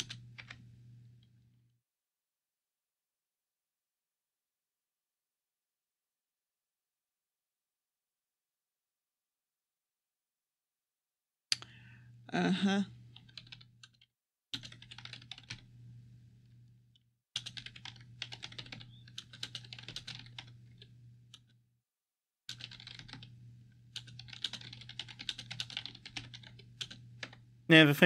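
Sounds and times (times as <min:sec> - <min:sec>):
computer keyboard typing: 0:00.0 - 0:00.6, 0:13.1 - 0:15.7, 0:17.4 - 0:21.5, 0:22.5 - 0:27.4.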